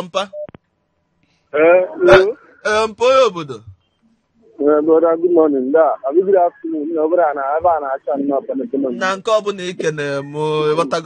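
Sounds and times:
person speaking: 0.0s - 0.4s, 1.6s - 3.8s, 4.5s - 11.0s.

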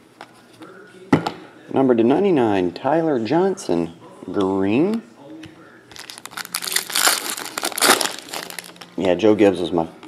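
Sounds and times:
foil wrapper crinkling: 5.9s - 8.9s.

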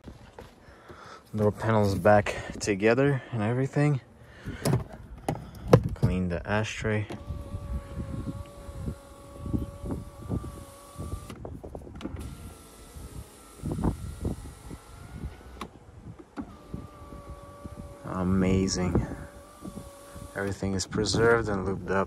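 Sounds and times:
power window motor whine: 7.1s - 20.7s.

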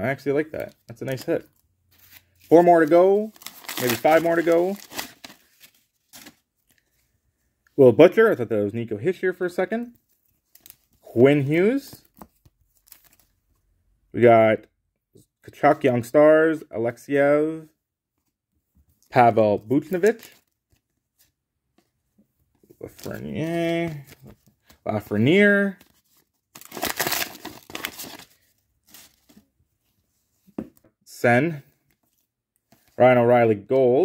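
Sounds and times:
cards clicking and rustling: 0.9s - 6.8s, 26.6s - 29.4s.

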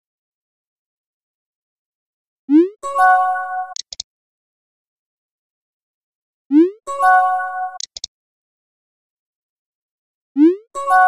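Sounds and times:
brief click: 3.7s - 4.1s, 7.8s - 8.1s.

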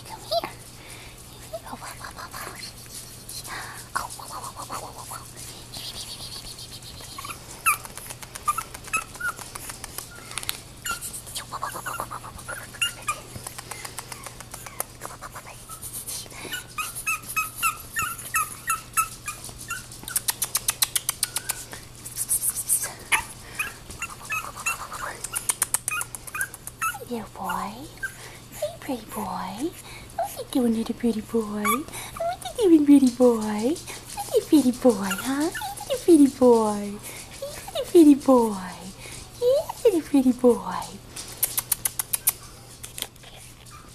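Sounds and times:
puppy yipping and squeaking: 6.4s - 13.3s, 16.5s - 21.7s, 23.1s - 28.2s, 35.0s - 36.0s.

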